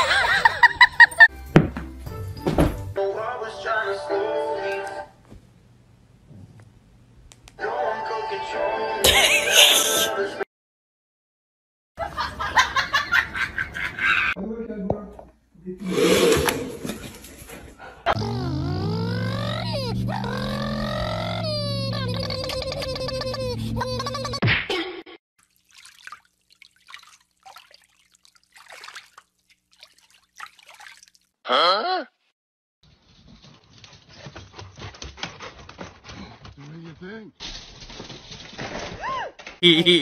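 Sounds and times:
dog whining howl: 0:18.1 - 0:22.6.

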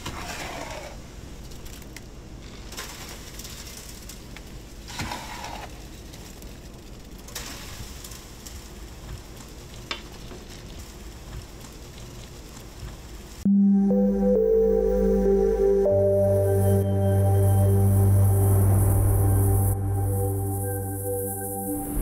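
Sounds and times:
crackling outdoor noise: 0:00.0 - 0:22.0.

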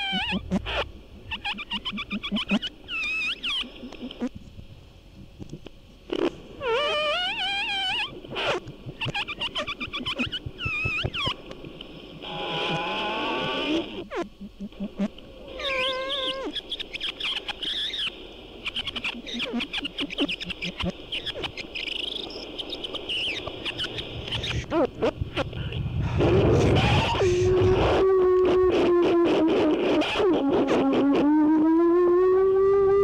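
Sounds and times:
warbling pitched tones: 0:00.0 - 0:04.3, 0:06.7 - 0:11.4.

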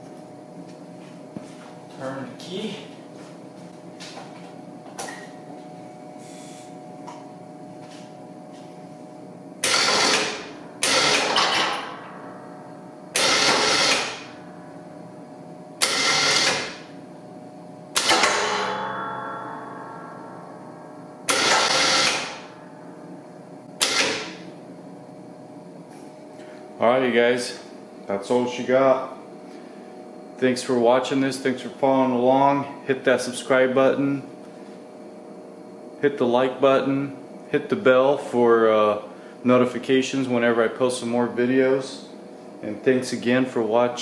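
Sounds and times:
steady hum: 0:00.0 - 0:44.0
electric winch running: 0:09.6 - 0:12.3, 0:13.1 - 0:14.8, 0:15.8 - 0:16.9, 0:21.1 - 0:22.8.

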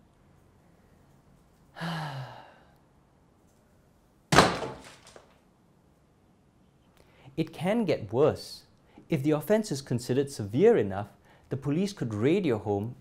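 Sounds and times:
person sighing: 0:01.7 - 0:02.8
rubber stamp thunk: 0:04.3 - 0:05.3.

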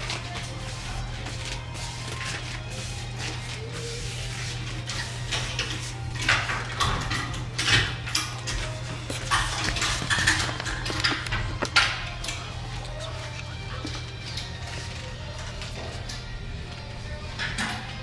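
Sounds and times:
faint background music: 0:00.0 - 0:18.0
clothes rustling and clinks: 0:04.8 - 0:16.4.

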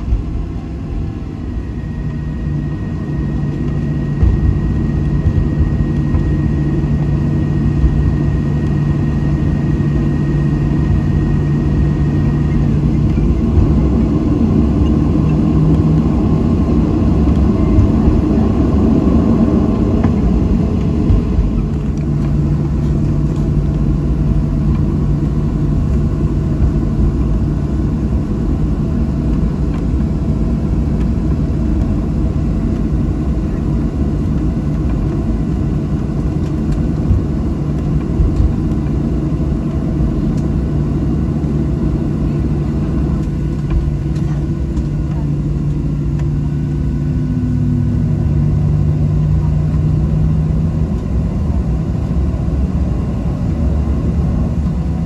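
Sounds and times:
jet engines idling in cabin: 0:00.0 - 0:55.0.

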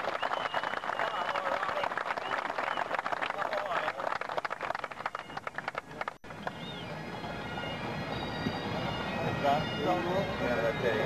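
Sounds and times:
bagpipe band playing: 0:06.3 - 0:11.0.

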